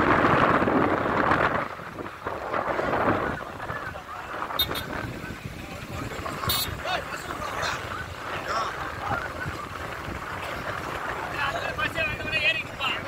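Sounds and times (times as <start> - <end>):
vehicle noise: 0.0 - 13.0
wind on microphone: 0.0 - 13.0.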